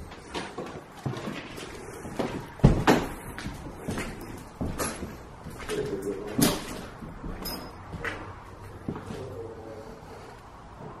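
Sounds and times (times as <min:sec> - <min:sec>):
footsteps on debris-littered floor: 0:00.0 - 0:09.2.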